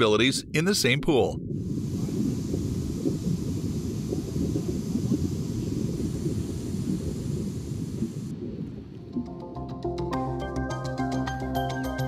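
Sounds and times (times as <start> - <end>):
underwater rumble: 0.0 - 9.6
crackle of exhaled bubbles: 1.4 - 9.4.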